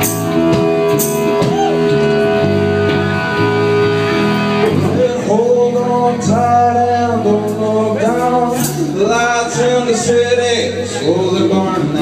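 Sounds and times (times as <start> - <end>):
drums: 0.0 - 9.7
bass: 0.0 - 12.0
electric guitar chords: 0.0 - 12.0.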